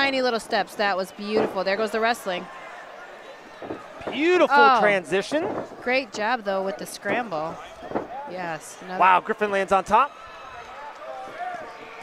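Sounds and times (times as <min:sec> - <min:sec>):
ringside commentary: 0:04.0 - 0:12.0.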